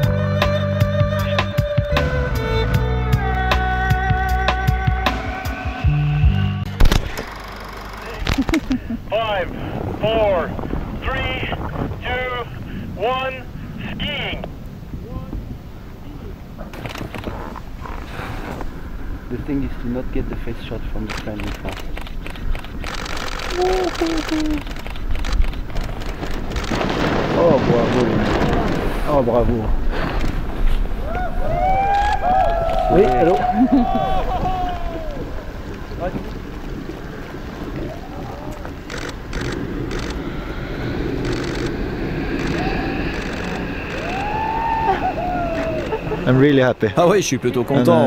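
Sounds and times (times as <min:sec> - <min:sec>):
wind noise: 0:06.7 - 0:48.0
low rumble: 0:14.4 - 0:46.5
person calling out: 0:23.5 - 0:24.6
person shouting: 0:32.8 - 0:35.2.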